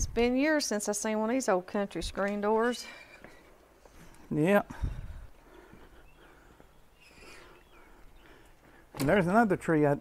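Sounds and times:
faint sliding bird chirps: 6.9 - 7.8.

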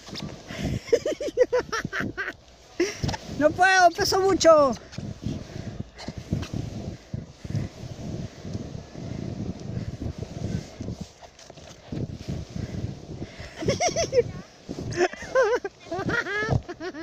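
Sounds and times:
plastic sled scraping over snow: 0.0 - 17.0
sled bumps and thuds: 0.0 - 17.0.

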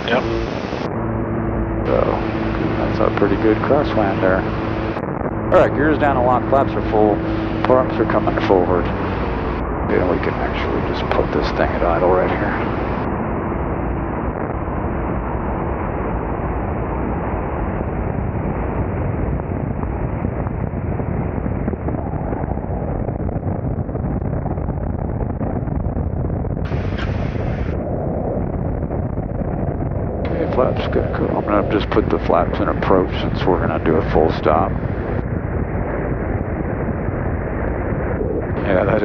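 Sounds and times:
piston aircraft engines idling: 0.0 - 13.4, 30.3 - 35.1
airflow rumble: 0.0 - 39.0.

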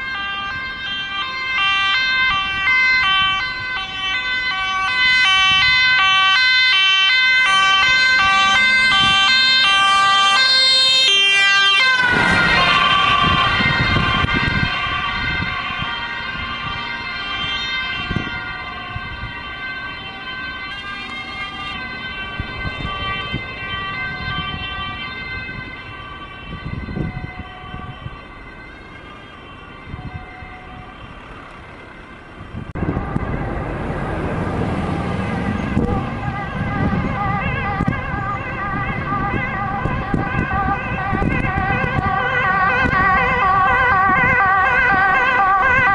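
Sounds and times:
ambulance siren: 0.0 - 45.9
wavering siren: 0.0 - 45.9.

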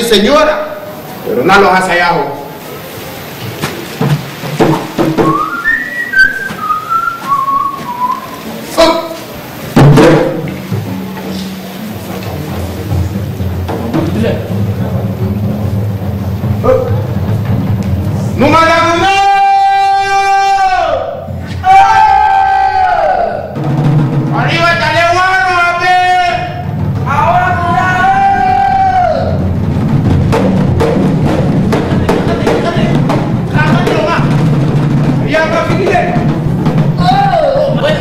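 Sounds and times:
hand drums: 3.5 - 8.6, 9.2 - 19.0, 23.5 - 24.7, 26.4 - 38.0
person whistling a tune: 5.2 - 8.4.

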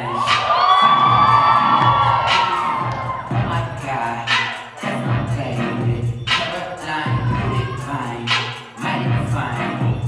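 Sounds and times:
audience cheering and screaming: 0.0 - 4.8, 6.9 - 8.4
dance music with low beat: 0.1 - 10.0.

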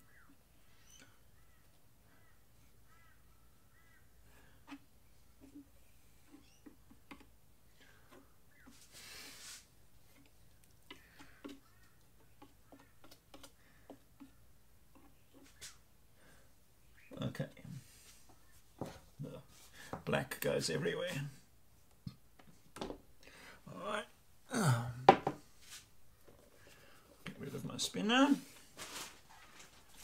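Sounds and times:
faint bird chirps: 0.0 - 4.5, 5.1 - 6.9, 7.9 - 8.8, 10.9 - 17.3
brief rustle: 28.7 - 30.0.

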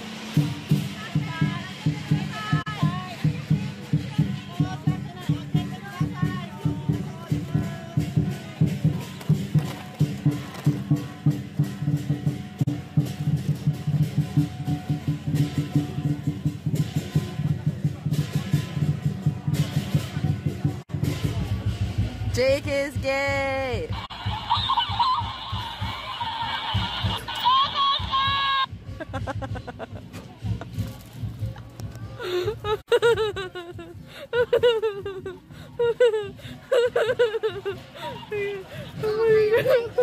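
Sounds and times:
cymbal crashes: 0.0 - 2.2
crowd chatter: 0.0 - 29.0, 29.6 - 40.0
drum beaten fast: 0.0 - 40.0.

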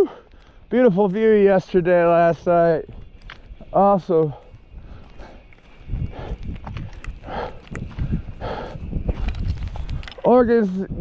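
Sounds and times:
heavy breathing: 0.0 - 0.8, 4.2 - 10.2
footsteps on dirt trail: 0.0 - 11.0.

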